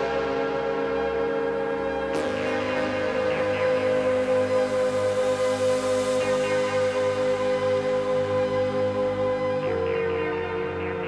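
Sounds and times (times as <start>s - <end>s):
electronic house music: 0.0s - 5.5s.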